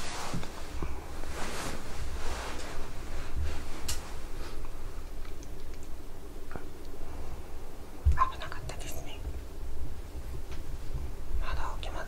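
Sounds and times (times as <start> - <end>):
low steady rumble: 0.0 - 12.0
person whispering: 8.2 - 9.3, 11.4 - 12.0.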